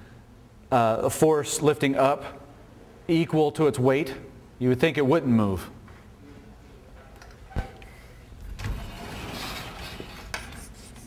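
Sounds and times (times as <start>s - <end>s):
scratchy rubbing: 8.9s - 11.0s.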